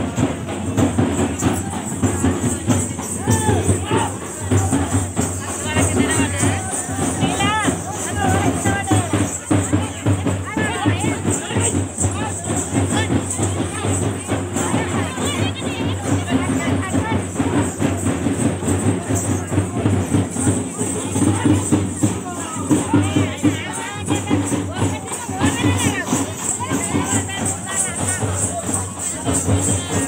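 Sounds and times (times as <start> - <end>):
crowd voices and shouts: 0.0 - 30.0
high jingle: 0.0 - 30.0
procession drumming: 0.0 - 30.0.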